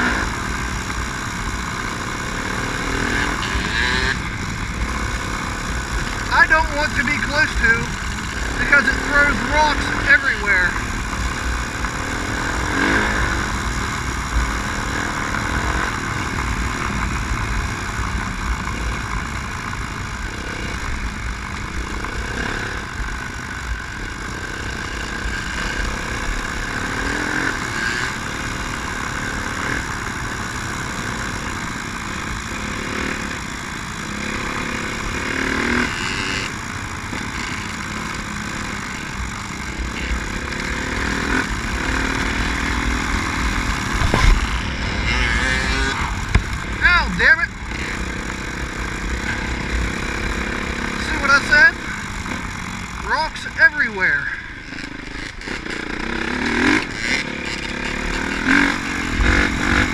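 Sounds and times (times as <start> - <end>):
dirt bike engine running: 0.0 - 59.9.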